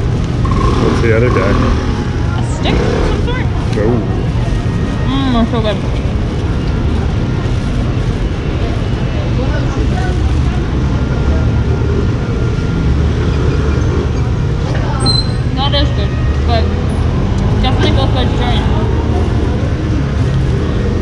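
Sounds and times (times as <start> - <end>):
cars and scooters passing: 0.0 - 21.0.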